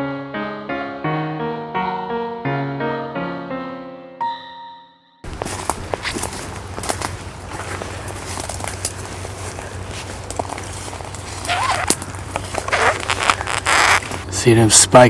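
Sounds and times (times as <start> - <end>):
footsteps through dry grass: 5.2 - 14.4
twigs crackling and snapping: 5.3 - 14.3.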